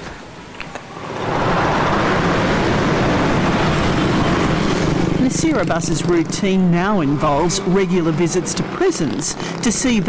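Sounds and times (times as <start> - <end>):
road traffic passing: 0.8 - 10.0.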